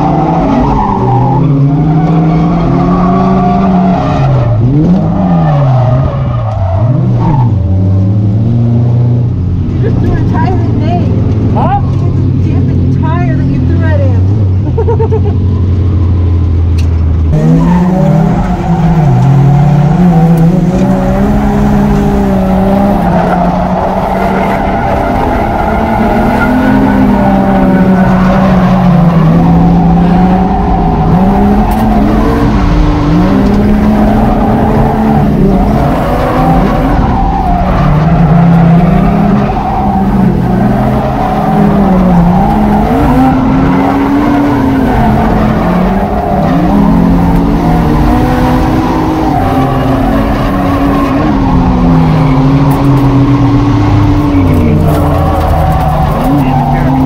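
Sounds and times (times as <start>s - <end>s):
tires squealing on asphalt: 0.0s - 7.8s, 17.3s - 57.0s
car engine revving: 0.0s - 57.0s.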